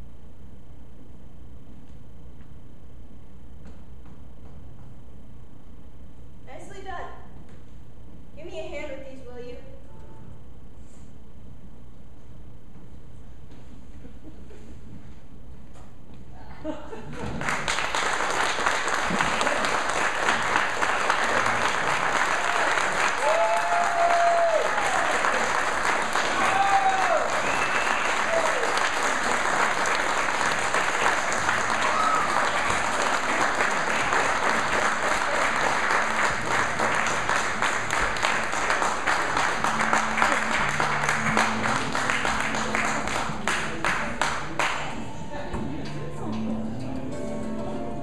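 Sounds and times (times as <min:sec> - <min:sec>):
audience applauding: 0:17.1 - 0:45.3
cheers: 0:20.3 - 0:35.7.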